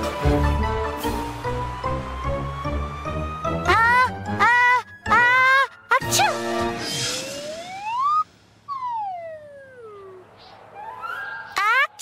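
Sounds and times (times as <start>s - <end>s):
cartoon whistle sliding in pitch: 7.4s - 10.2s.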